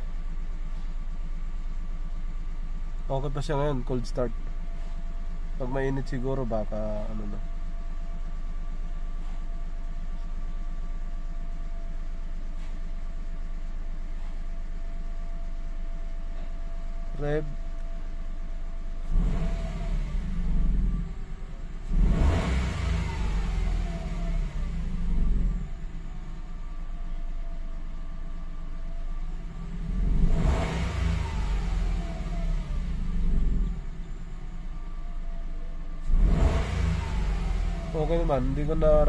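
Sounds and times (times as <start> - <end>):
car engine idling and revving: 0.0 - 39.0.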